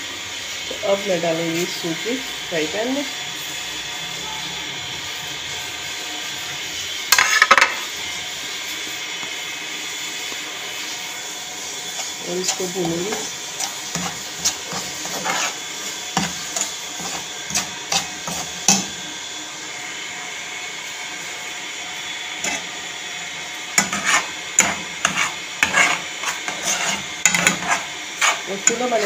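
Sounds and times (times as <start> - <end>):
faint sizzle: 0.0 - 29.0
spoon scraping frying pan: 7.1 - 7.9, 11.8 - 19.0, 22.3 - 22.8, 23.6 - 29.0.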